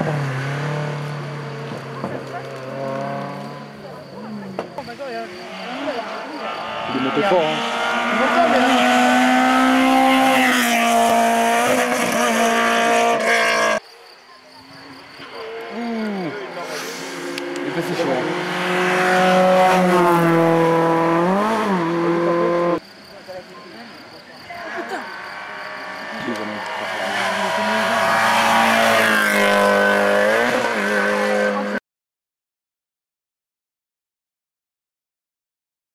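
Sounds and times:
car engine approaching: 0.0 - 13.8, 15.2 - 22.8, 24.7 - 31.8
rally car engine at high revs: 0.0 - 13.8, 15.3 - 22.8, 24.7 - 31.8.

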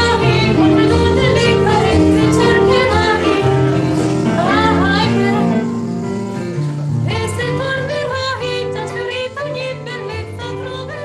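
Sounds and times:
woman singing: 0.0 - 5.8, 7.0 - 11.0
violins: 0.0 - 9.1.

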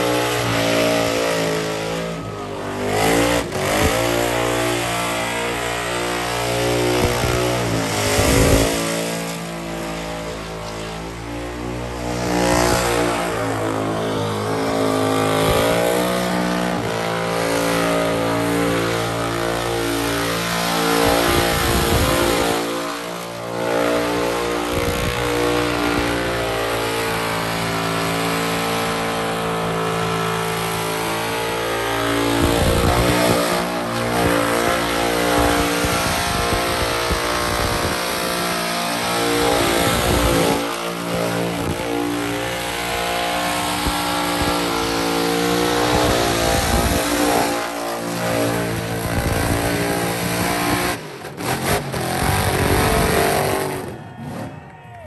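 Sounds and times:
car engine at high revs: 0.0 - 54.6.

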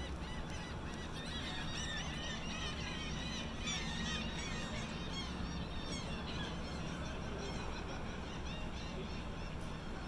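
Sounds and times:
flock of birds calling: 0.0 - 10.0
low hum of ship machinery: 0.0 - 10.0.

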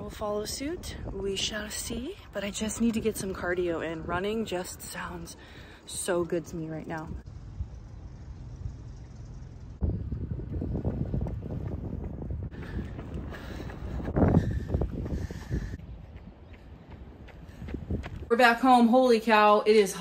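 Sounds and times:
wind buffeting microphone: 0.0 - 18.9.

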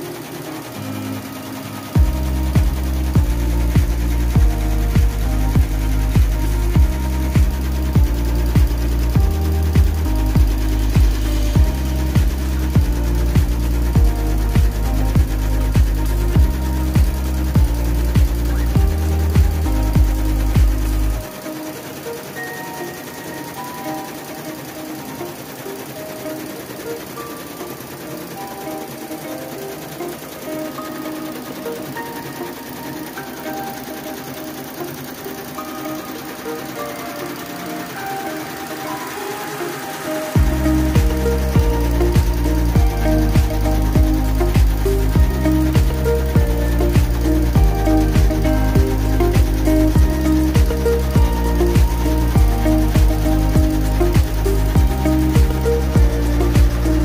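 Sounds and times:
electronic music with bass beat: 0.0 - 57.0
embroidery machine clattering: 0.0 - 57.0.

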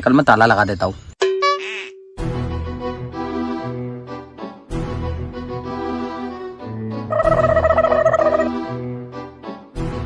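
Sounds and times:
background music: 2.2 - 10.0
rapid warbling trill: 7.1 - 8.6.

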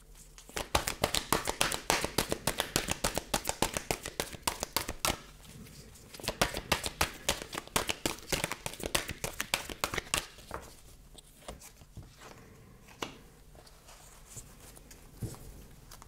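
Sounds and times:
cards being shuffled: 0.2 - 5.3, 6.1 - 12.1.

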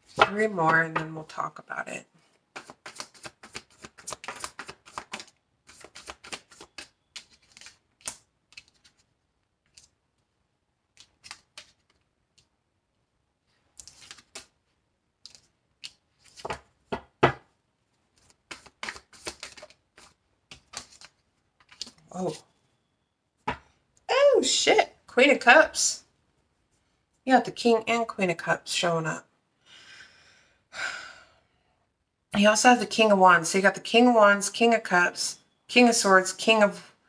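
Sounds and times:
cards being shuffled: 2.5 - 10.0, 10.9 - 12.5, 13.7 - 14.6, 15.2 - 16.7, 18.1 - 22.0.

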